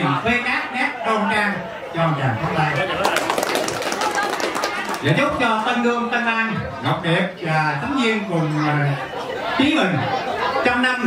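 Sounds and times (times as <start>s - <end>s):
group applauding: 2.9s - 5.8s.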